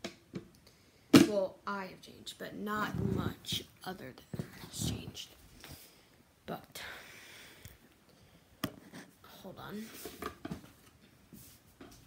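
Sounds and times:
soft handling rustle: 7.9s - 12.0s.

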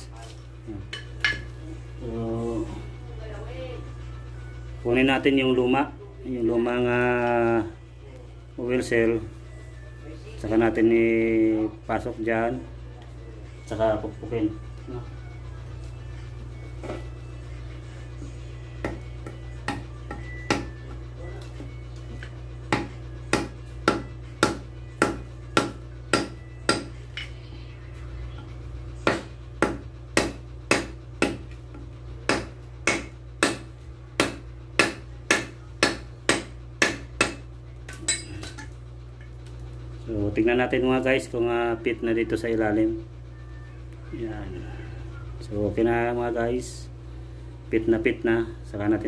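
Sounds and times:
hammer tapping on metal: 32.3s - 37.4s.

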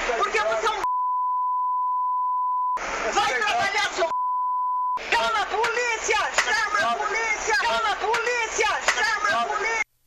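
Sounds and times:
high censor beep: 0.8s - 2.8s, 4.1s - 5.0s
raised voices: 5.0s - 9.9s
street noise: 5.0s - 9.9s.

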